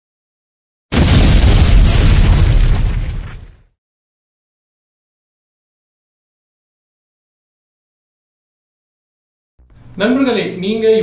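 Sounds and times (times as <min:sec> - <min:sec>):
deep explosion blast with hiss: 0:00.9 - 0:03.7.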